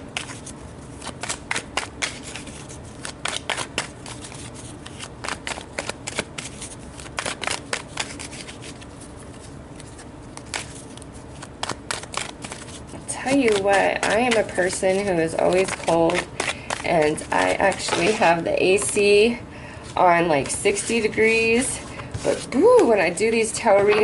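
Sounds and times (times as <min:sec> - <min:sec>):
cards being shuffled: 0:00.1 - 0:19.1.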